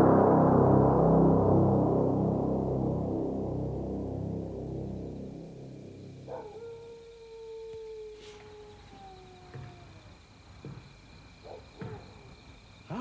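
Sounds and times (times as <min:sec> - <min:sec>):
long sinking howl: 0:06.1 - 0:10.2
faint knocks: 0:08.3 - 0:13.0.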